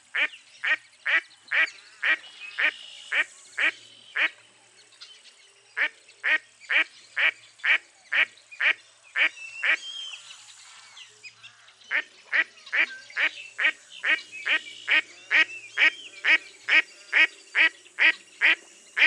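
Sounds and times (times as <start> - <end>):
duck quacking: 11.9 - 18.6.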